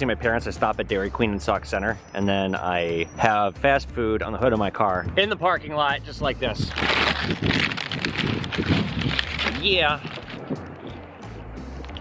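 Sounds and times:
low steady rumble: 0:06.0 - 0:12.0
paper bag rustling: 0:06.7 - 0:10.5.

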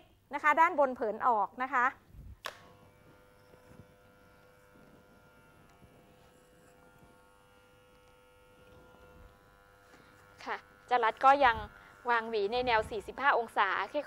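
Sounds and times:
electric hair clipper buzzing: 0:02.0 - 0:14.0.

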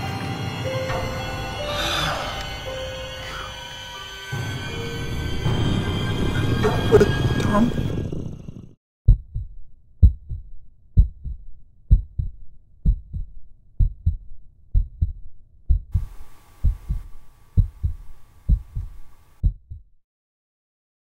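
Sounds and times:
heartbeat double thump: 0:09.1 - 0:20.0
faint hiss: 0:16.0 - 0:19.4.

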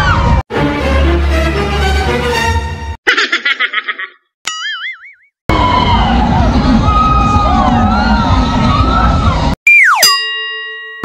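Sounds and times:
fairground noise with music: 0:05.5 - 0:09.6.

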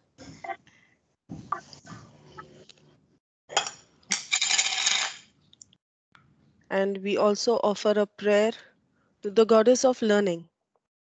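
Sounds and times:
hard objects clinking: 0:03.6 - 0:05.3.

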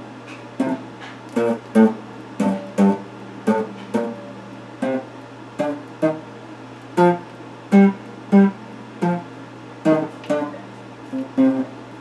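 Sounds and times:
steady low hum: 0:00.0 - 0:12.0
electric guitar picked slowly: 0:07.0 - 0:11.7.

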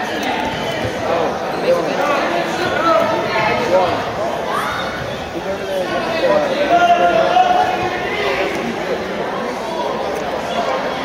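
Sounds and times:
spectators talking and calling out: 0:00.0 - 0:11.0.

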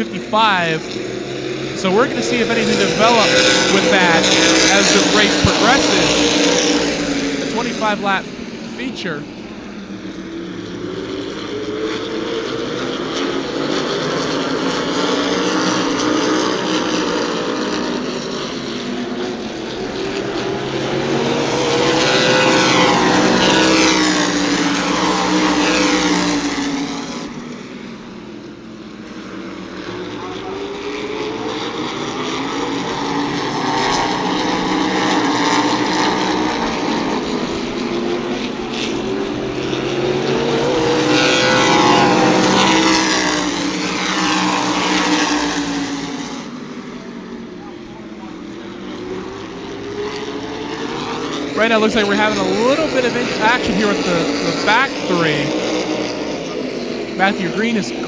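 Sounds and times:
race car engines passing: 0:00.0 - 0:58.0.

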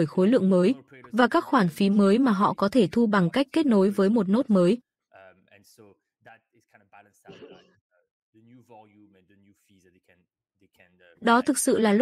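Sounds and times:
voice-over speech: 0:00.0 - 0:07.6, 0:08.4 - 0:10.1, 0:10.7 - 0:12.0
man talking faintly: 0:00.7 - 0:01.2, 0:05.1 - 0:07.6, 0:08.4 - 0:11.2.

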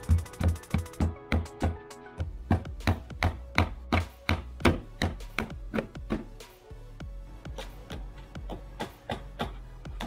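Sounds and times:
faint music: 0:00.0 - 0:10.0
hammer striking wooden boards: 0:02.5 - 0:06.3.

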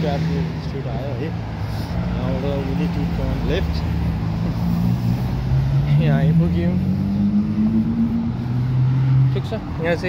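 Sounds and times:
passing road traffic: 0:00.0 - 0:10.0
vehicle engine speeding up: 0:02.9 - 0:09.9.

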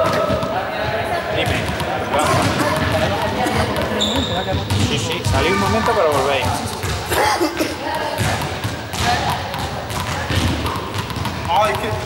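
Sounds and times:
balls bouncing on hall floor: 0:00.0 - 0:12.0.

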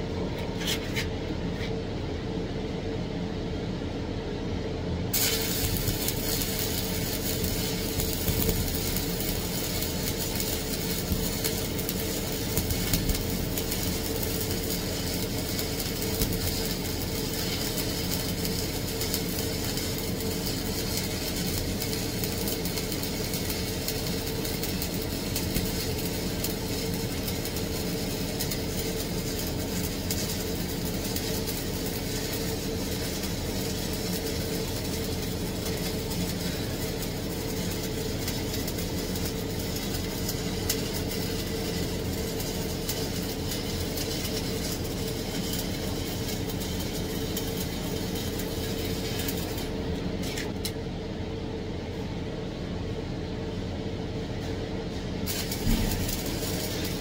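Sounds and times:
steady machine hum: 0:00.0 - 0:57.0
welding arc crackling: 0:05.1 - 0:50.8, 0:55.3 - 0:57.0.

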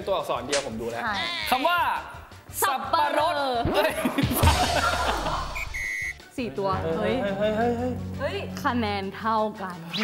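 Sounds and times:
laughter: 0:03.8 - 0:05.6
electronic beeps: 0:05.6 - 0:06.2.

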